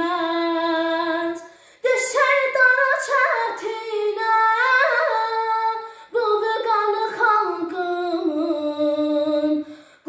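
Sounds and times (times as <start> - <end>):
girl singing: 0.0 - 10.0.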